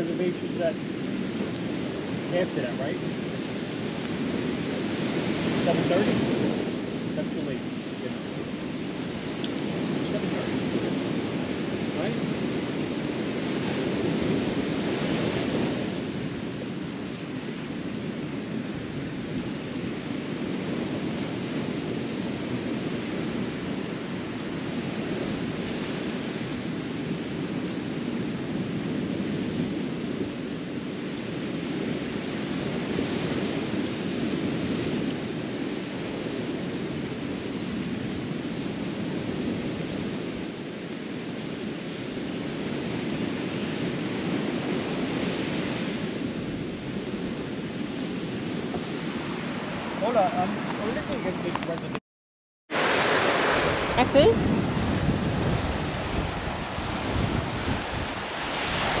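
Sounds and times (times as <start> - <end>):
waves on sandy beach: 0.0 - 52.0, 52.7 - 59.0
wind: 0.0 - 52.0, 52.7 - 59.0.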